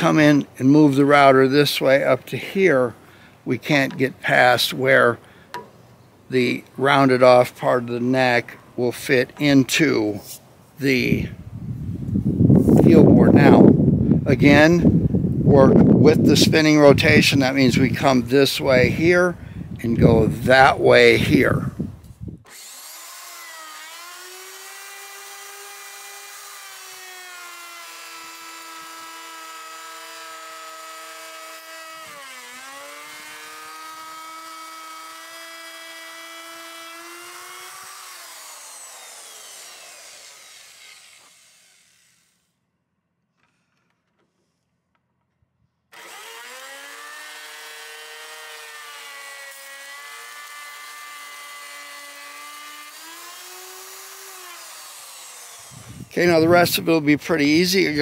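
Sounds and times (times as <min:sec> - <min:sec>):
electric router cutting wood: 0:22.5 - 0:42.5, 0:45.9 - 0:56.9.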